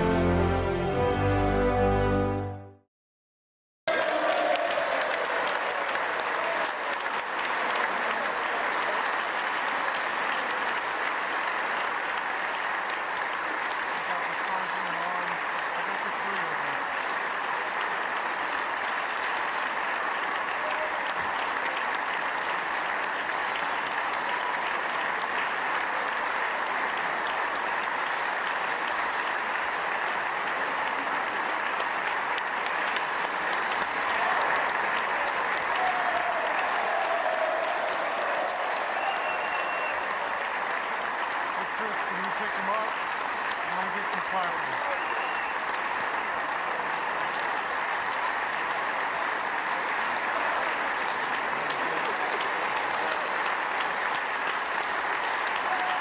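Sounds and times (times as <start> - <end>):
crowd applauding: 0.0 - 2.6, 3.9 - 56.0.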